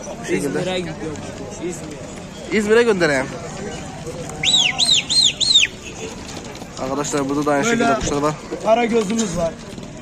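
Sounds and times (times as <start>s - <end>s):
bird chirping: 4.4s - 5.9s.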